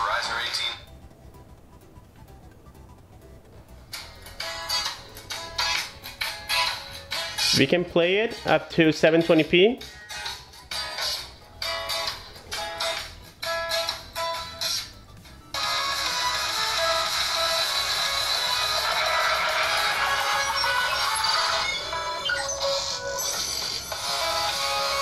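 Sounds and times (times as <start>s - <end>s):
thin music from phone speaker: 0.0s - 25.0s.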